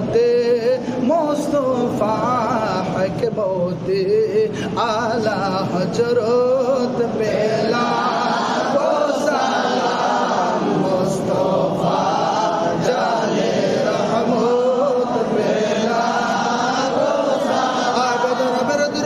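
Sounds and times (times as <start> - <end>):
men chanting: 4.7 - 19.0.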